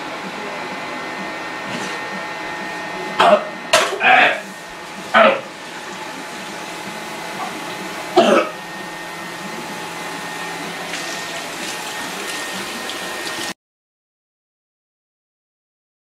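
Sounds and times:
water running from tap: 0:04.8 - 0:09.9, 0:10.5 - 0:13.6.

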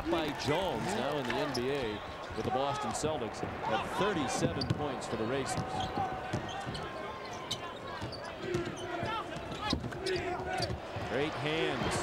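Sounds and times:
crowd noise: 0:00.0 - 0:12.0
sneakers squeaking: 0:04.4 - 0:10.8.

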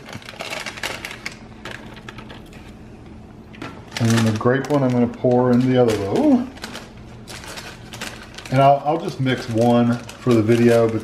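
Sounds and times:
packet crinkling: 0:00.0 - 0:02.8, 0:03.6 - 0:11.0.

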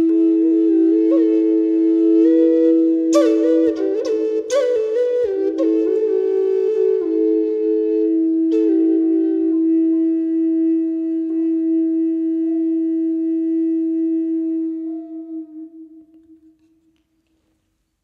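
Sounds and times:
flute holding a long note: 0:00.0 - 0:16.6.

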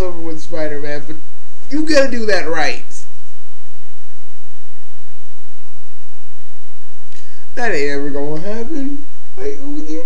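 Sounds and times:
low even hum: 0:00.0 - 0:10.0
steady hiss: 0:00.0 - 0:10.0.

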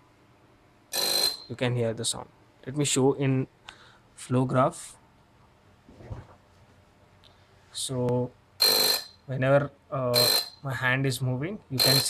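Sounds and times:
loud electronic buzz: 0:00.9 - 0:01.5, 0:08.6 - 0:09.2, 0:10.1 - 0:10.6, 0:11.8 - 0:12.0.

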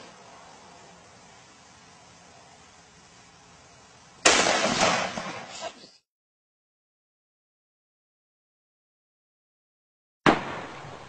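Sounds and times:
pistol shot: 0:04.2 - 0:05.5, 0:10.2 - 0:10.8.

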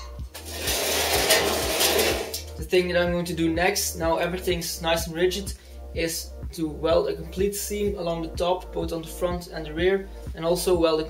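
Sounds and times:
steel scraping on workbench: 0:00.0 - 0:02.5.

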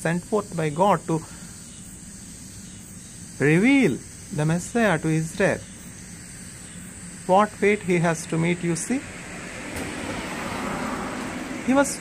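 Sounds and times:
car passing: 0:07.8 - 0:12.0.

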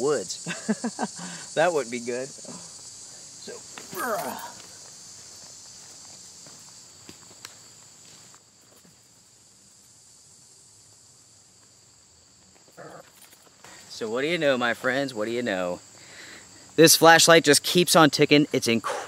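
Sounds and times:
insects chirping: 0:00.0 - 0:19.0
footsteps: 0:02.5 - 0:09.2
man grunting with effort: 0:03.9 - 0:04.7.

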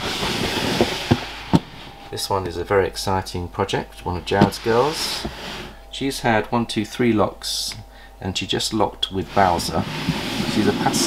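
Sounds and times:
plastic sliding on plastic: 0:00.0 - 0:02.1, 0:04.3 - 0:05.8, 0:09.3 - 0:11.0.

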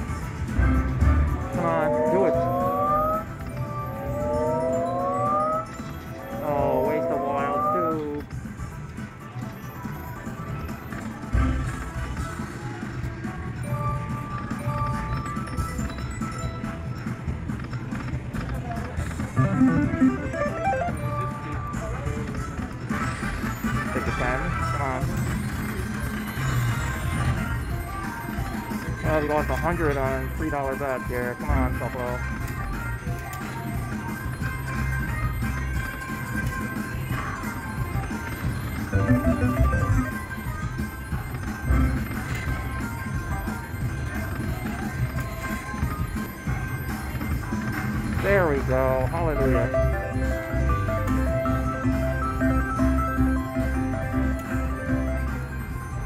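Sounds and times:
slot machine reel-spin tones: 0:00.1 - 0:08.7, 0:19.0 - 0:56.0
murmuring voices: 0:06.2 - 0:08.3
rising electronic glides: 0:38.9 - 0:40.2.

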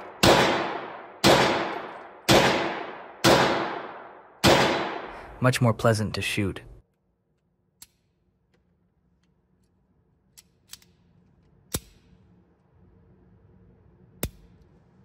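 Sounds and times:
faint hum: 0:05.0 - 0:15.0.

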